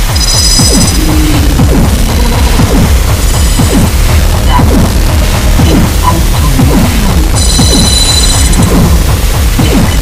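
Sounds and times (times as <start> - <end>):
harsh noise music: 0.0 - 10.0
high buzzing tone: 0.0 - 10.0.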